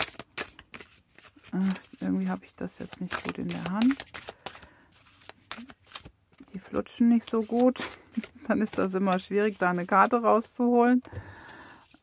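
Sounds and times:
cards being shuffled: 0.0s - 10.6s.

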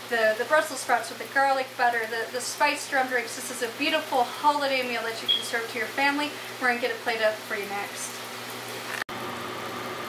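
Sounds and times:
kitchen hiss and low hum: 0.0s - 10.0s.

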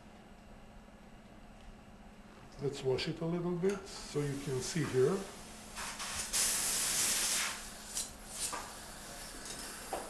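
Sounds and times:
air-water syringe hissing: 5.9s - 8.6s.

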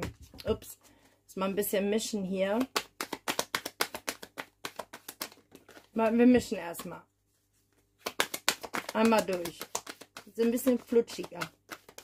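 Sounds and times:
cards being shuffled by hand: 2.6s - 12.0s.

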